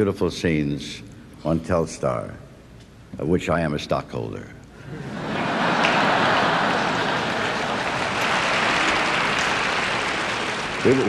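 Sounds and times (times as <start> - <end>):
audience applauding: 5.4 - 11.0.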